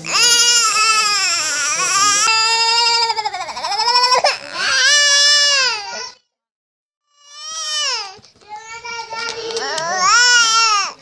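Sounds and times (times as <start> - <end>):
baby crying: 0.0 - 6.2, 7.2 - 8.2, 9.6 - 11.0.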